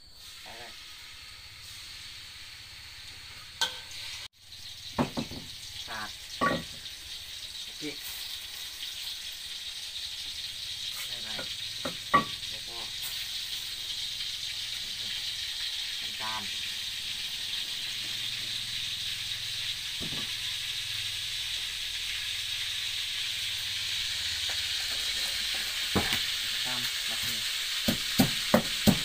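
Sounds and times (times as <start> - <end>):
pork sizzling in a wok: 0.0 - 29.0
sharp knocks: 5.0 - 5.5.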